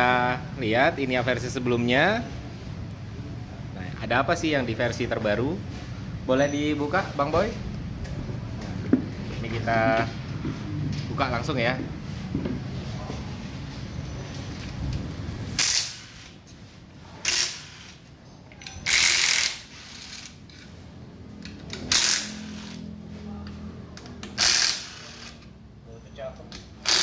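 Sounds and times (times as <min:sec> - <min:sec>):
impact wrench hammering: 0:15.6 - 0:16.3, 0:17.2 - 0:18.0, 0:18.8 - 0:20.4, 0:21.7 - 0:22.8, 0:24.2 - 0:25.5, 0:26.8 - 0:27.0.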